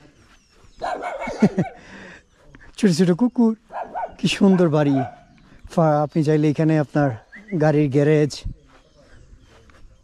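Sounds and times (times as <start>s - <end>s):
puppies barking: 0.8s - 2.1s, 3.6s - 5.5s.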